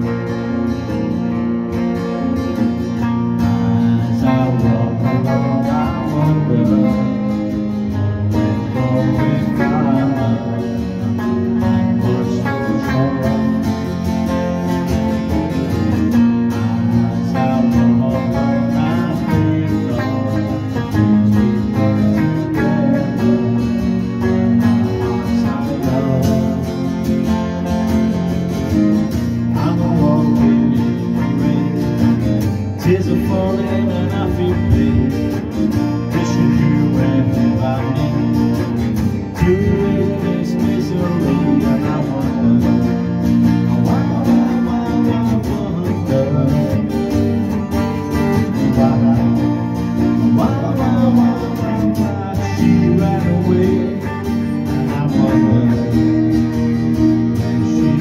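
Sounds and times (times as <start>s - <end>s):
electric guitar playing: 0.0s - 58.0s.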